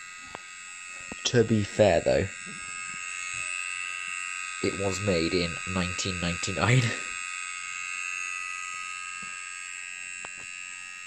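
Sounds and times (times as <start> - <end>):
hard drive whine: 0.0 - 11.0.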